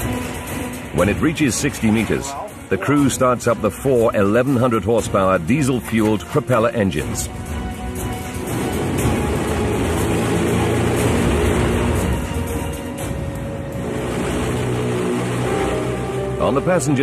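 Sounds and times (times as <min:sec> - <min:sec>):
documentary background music: 0:00.0 - 0:17.0
low engine drone: 0:07.3 - 0:17.0.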